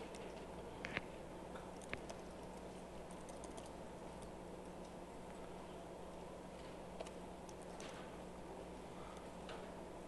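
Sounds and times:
steady low hum: 0:00.0 - 0:10.0
laptop keyboard typing: 0:01.8 - 0:04.8.

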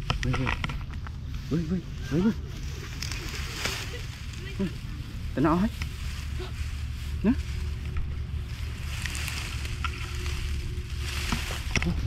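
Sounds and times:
faint rustle: 0:00.0 - 0:12.0.

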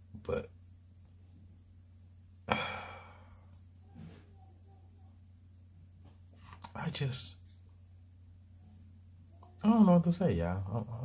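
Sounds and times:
man sighing: 0:02.5 - 0:03.4.

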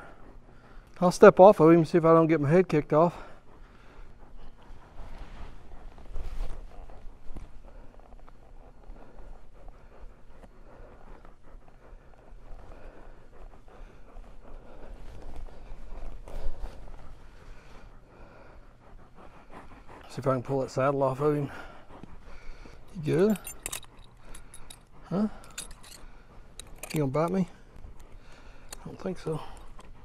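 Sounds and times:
saddle leather rustling: 0:20.1 - 0:27.6.

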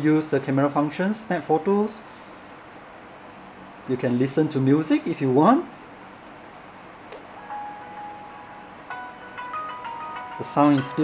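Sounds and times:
tune from phone loudspeaker: 0:10.2 - 0:11.0.

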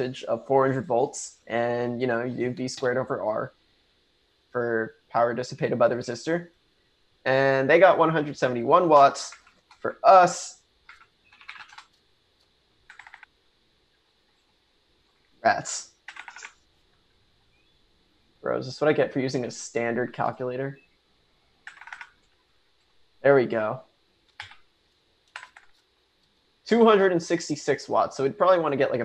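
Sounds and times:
keystrokes on computer keyboard: 0:10.8 - 0:12.0, 0:12.9 - 0:13.3, 0:16.0 - 0:16.6, 0:21.6 - 0:22.4, 0:24.3 - 0:25.9.

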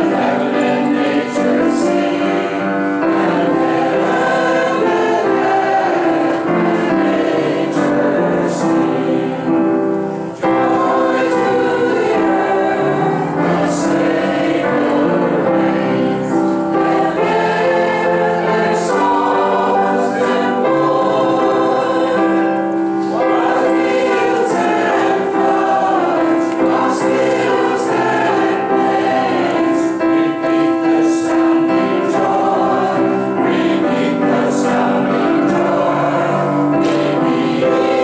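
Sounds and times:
congregation singing a hymn: 0:00.0 - 0:38.0.

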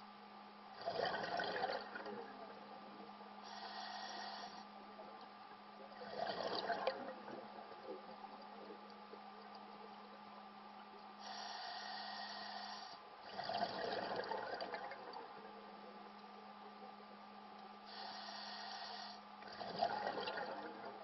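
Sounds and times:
faint steady hum: 0:00.0 - 0:21.0
bubbling exhaust: 0:00.8 - 0:04.4, 0:05.9 - 0:09.2, 0:13.2 - 0:17.0, 0:19.5 - 0:21.0
diver breathing through regulator: 0:03.4 - 0:04.8, 0:11.2 - 0:14.1, 0:17.9 - 0:20.0.

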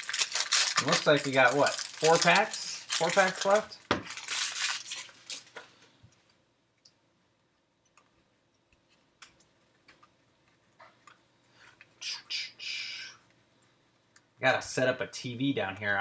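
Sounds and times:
foil pack crinkling and rustling: 0:00.0 - 0:05.8.

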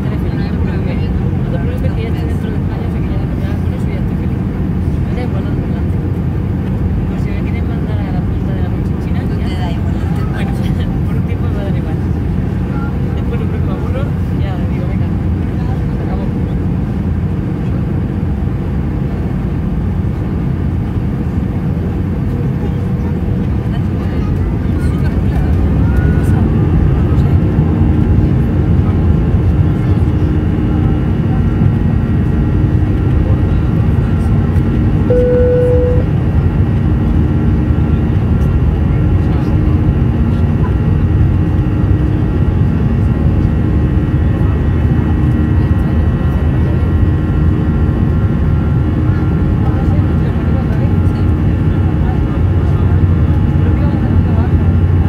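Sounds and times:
jet engine drone: 0:34.6 - 0:55.0
short single tone: 0:35.1 - 0:36.1.

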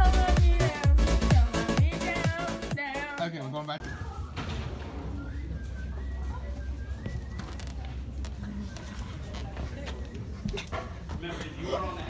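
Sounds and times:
indistinct chatter of people: 0:03.8 - 0:12.0.

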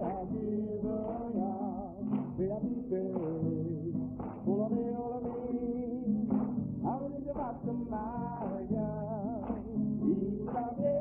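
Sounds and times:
instrumental accompaniment: 0:00.0 - 0:11.0
man singing with vibrato: 0:00.0 - 0:11.0.

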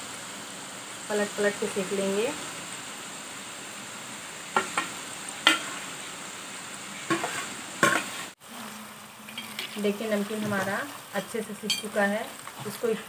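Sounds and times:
food deep-frying in hot oil: 0:00.0 - 0:13.0.

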